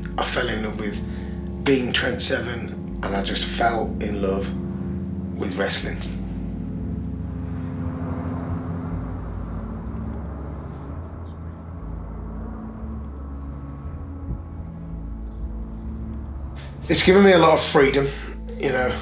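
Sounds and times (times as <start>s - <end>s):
jet airliner flying overhead: 4.0s - 16.9s.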